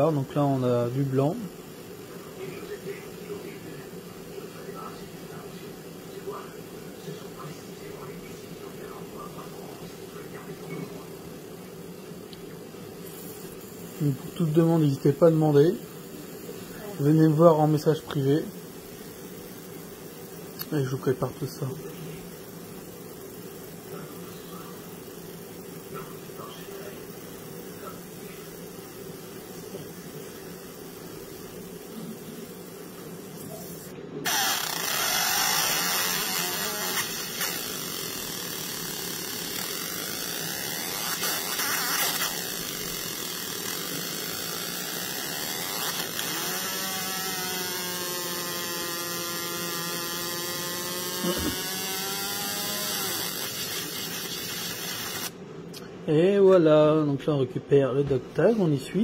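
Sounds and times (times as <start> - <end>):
laser buzzing hiss: 0.0 - 55.4
machine low hum: 0.0 - 59.0.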